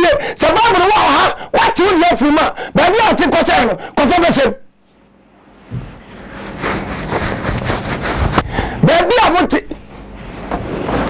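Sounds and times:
man talking excitedly: 0.0s - 4.7s, 8.8s - 9.8s.

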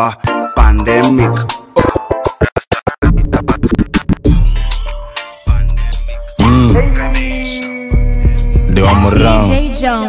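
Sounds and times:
electronic beat: 0.0s - 10.0s
turntable scratch cuts: 1.8s - 4.4s
deep bass: 3.0s - 10.0s.

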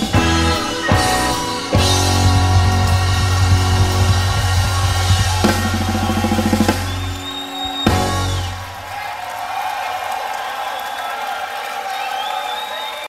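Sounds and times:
rock band closing chord: 0.0s - 8.9s
crowd cheering: 0.0s - 13.0s
high whistles: 0.6s - 9.3s, 10.4s - 13.0s
drum hit: 1.7s - 7.3s, 7.9s - 8.8s.

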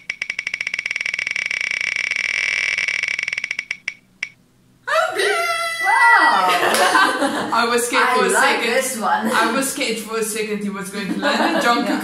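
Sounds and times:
spinning wheel ticking: 0.0s - 4.4s.

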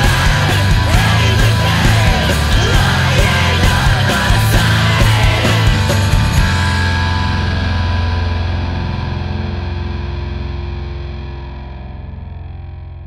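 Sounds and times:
distorted electric guitar chord: 0.0s - 13.0s
low bass drone: 0.0s - 13.0s.

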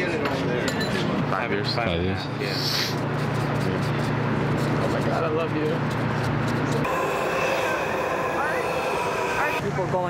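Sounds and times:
train whine: 6.8s - 10.0s.

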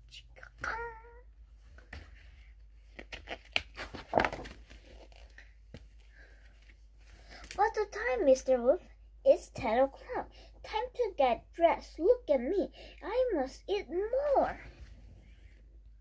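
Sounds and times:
person speaking: 0.0s - 1.2s, 7.6s - 14.8s
board book pages turning: 1.6s - 7.2s.

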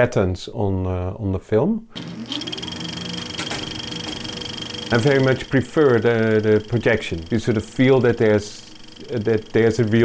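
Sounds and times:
high projector whine: 1.9s - 10.0s
film projector clattering: 2.0s - 10.0s.

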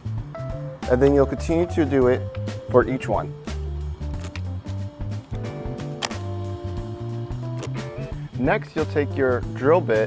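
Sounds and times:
background music with bass: 0.0s - 10.0s
rivet snapping: 4.1s - 4.5s, 6.0s - 6.2s, 7.4s - 8.1s.

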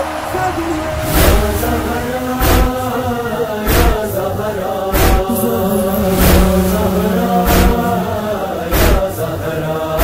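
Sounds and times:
chanted vocals holding long notes: 0.0s - 10.0s.

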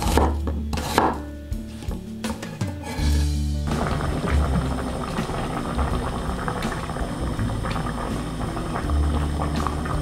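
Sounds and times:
knife chopping onion on board: 0.0s - 1.3s.

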